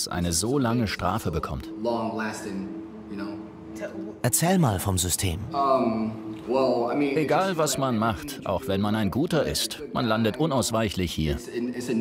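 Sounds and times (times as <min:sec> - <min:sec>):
steady low tone: 0:00.4 - 0:12.0.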